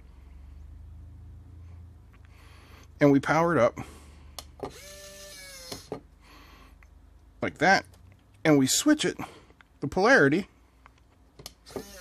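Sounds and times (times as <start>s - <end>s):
small gear motor whining: 4.7s - 5.9s, 11.7s - 12.0s.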